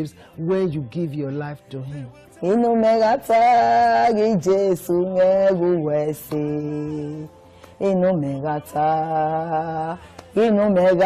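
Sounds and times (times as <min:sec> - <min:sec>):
person singing long notes: 0:01.7 - 0:11.0.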